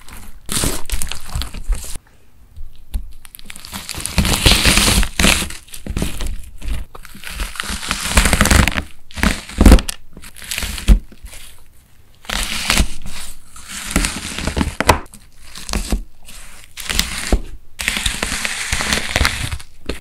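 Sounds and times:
knife cutting crunchy wax sponge: 3.5 - 11.5, 12.2 - 20.0.

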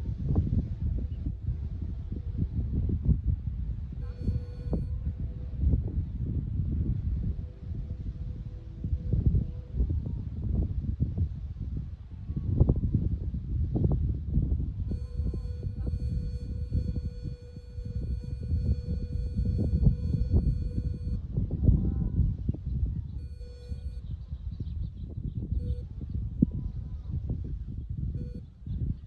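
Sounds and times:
wind buffeting microphone: 0.0 - 29.0
electronic beep tone: 4.0 - 5.0, 14.9 - 21.2, 23.2 - 24.1, 25.6 - 25.9, 28.2 - 28.5.

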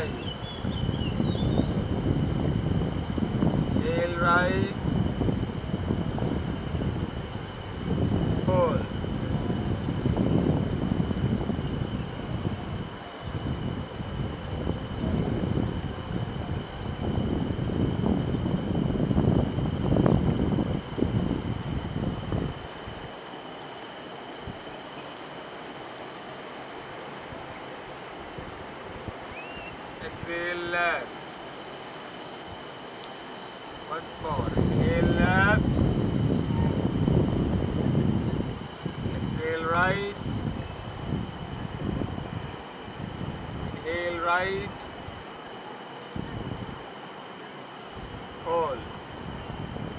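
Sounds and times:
wind buffeting microphone: 0.0 - 23.6, 26.0 - 47.0, 47.8 - 49.9
river rushing: 22.6 - 34.0.

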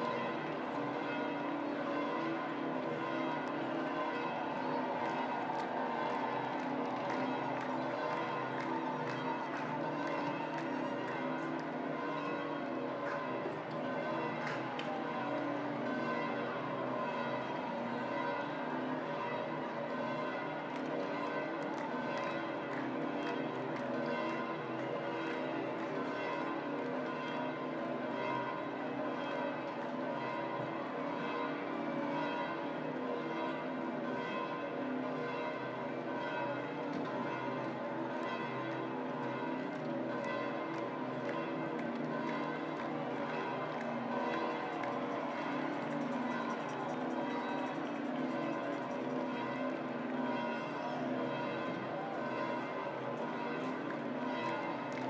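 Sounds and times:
church bells pealing: 0.0 - 55.0.

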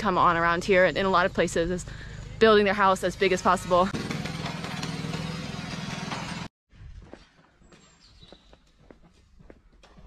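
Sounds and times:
small engine idling: 3.0 - 6.5.

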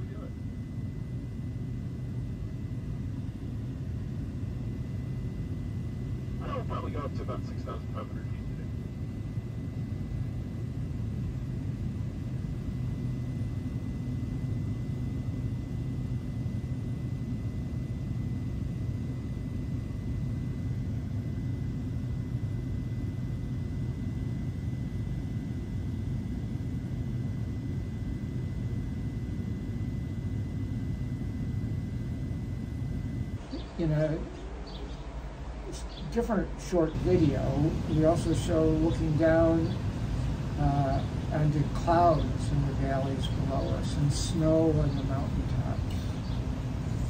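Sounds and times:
engine and airflow drone: 0.0 - 47.0.

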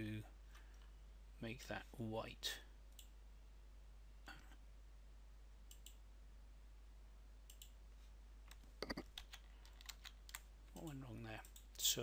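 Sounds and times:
low steady hum: 0.0 - 12.0
computer mouse clicks: 5.7 - 6.0, 7.5 - 7.8, 8.5 - 11.8.

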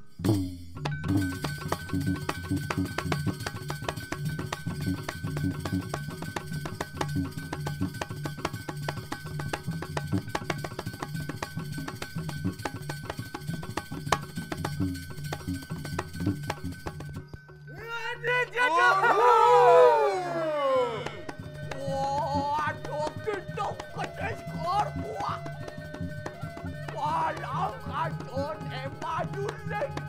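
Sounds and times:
gamelan percussive strokes: 0.0 - 30.0
low metallophone notes: 20.4 - 30.0.

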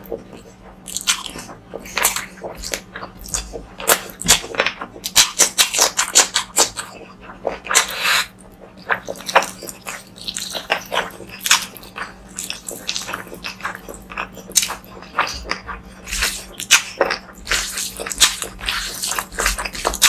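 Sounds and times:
wet chewing and lip smacks: 0.0 - 20.0.

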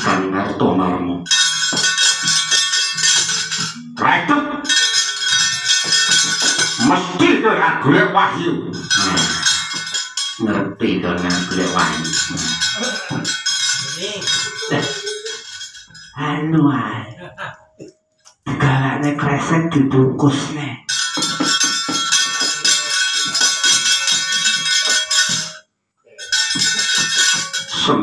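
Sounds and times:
man speaking or chanting: 0.0 - 1.3, 3.8 - 4.7, 6.8 - 9.5, 10.4 - 13.2, 13.9 - 15.3, 16.2 - 17.2, 18.5 - 20.9, 27.7 - 28.0
metallic plates clanging: 1.3 - 4.0, 4.7 - 7.3, 8.8 - 16.2, 20.9 - 25.6, 26.2 - 28.0.

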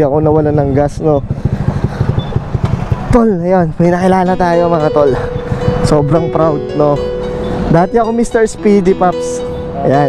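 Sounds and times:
motor scooter engine idling: 0.2 - 8.2.

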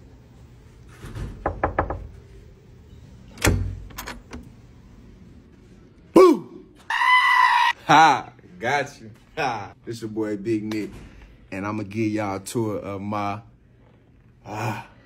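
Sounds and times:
knocking on wooden door: 1.4 - 2.1
door clunk and clicks: 3.3 - 4.5
man yelling: 6.1 - 8.4.

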